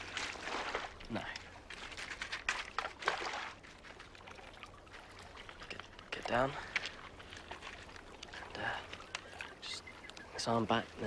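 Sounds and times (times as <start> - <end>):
small water splashes: 0.0 - 11.0
water lapping on pebble shore: 0.0 - 11.0.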